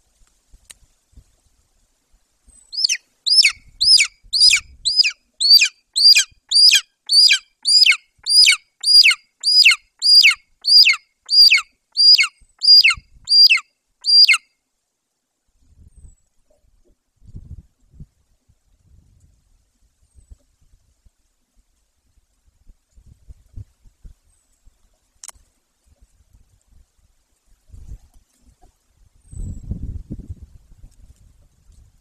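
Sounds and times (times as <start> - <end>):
eagle yelping: 2.8 - 14.4.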